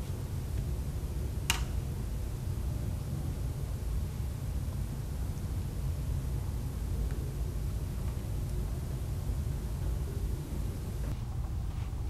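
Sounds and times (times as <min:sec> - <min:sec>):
low rumble with faint hiss: 0:00.0 - 0:12.0.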